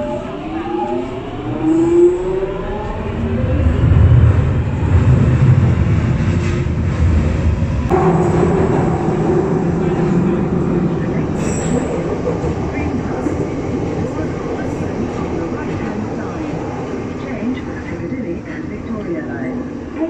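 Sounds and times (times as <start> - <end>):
train wheels rumbling: 0.6 - 20.0.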